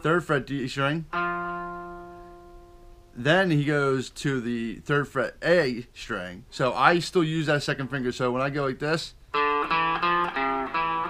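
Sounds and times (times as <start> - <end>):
electric guitar note ringing: 1.1 - 3.2, 9.3 - 11.0.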